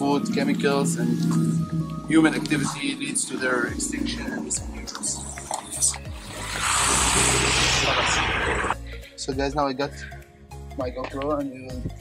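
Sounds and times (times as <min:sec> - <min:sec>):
background music: 0:00.0 - 0:12.0
water splashing and rushing: 0:06.2 - 0:08.8.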